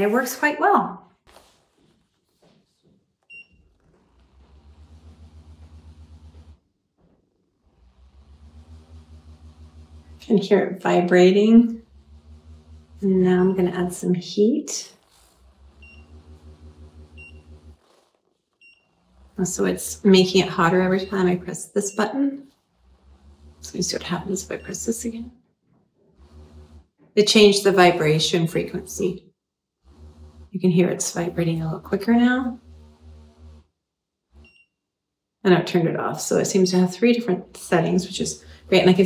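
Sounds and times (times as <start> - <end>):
pulsing vibration motor hum: 3.6 - 6.6, 7.5 - 25.3, 26.1 - 29.2, 29.8 - 34.6, 36.1 - 39.0.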